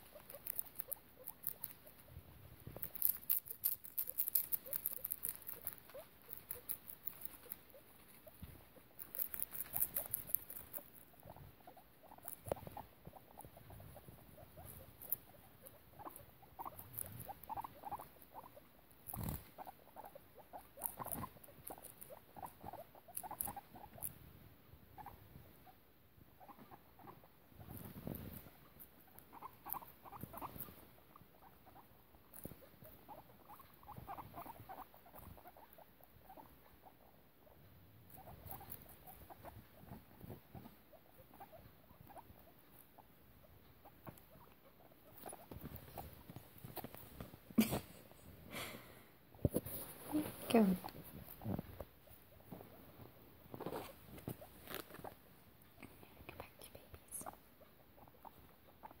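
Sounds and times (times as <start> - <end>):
guinea pigs squeaking: 0.0 - 48.2, 49.3 - 56.5, 57.1 - 59.0.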